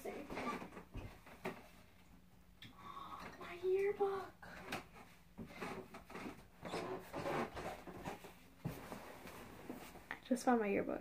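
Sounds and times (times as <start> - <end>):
rustling and shuffling objects: 0.0 - 2.4, 3.2 - 10.4.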